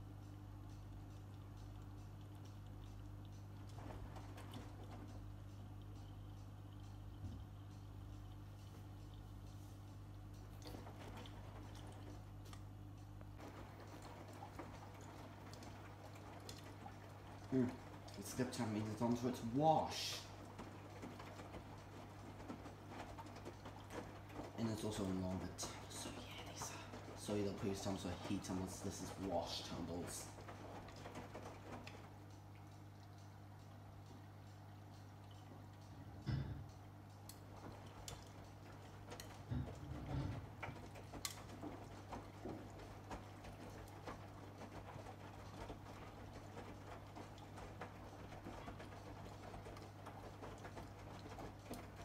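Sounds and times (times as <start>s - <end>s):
washing machine hum: 0.0s - 52.0s
wet laundry tumbling in drum: 0.8s - 6.3s, 7.1s - 33.2s, 35.2s - 52.0s.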